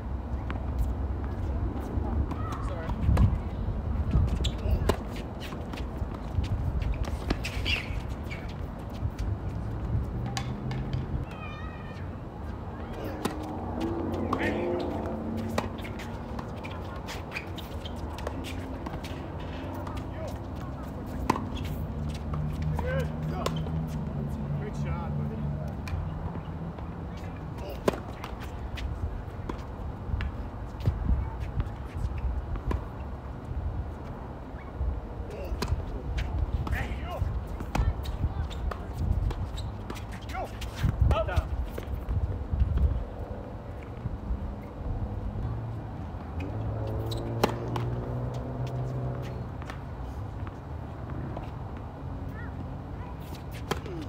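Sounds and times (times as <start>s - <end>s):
players' voices: 0.3s - 33.0s, 34.7s - 42.1s, 52.2s - 54.0s
tennis balls struck by racquets: 0.4s - 11.3s, 12.8s - 24.0s, 25.7s - 31.9s, 46.3s - 49.8s, 53.5s - 54.0s.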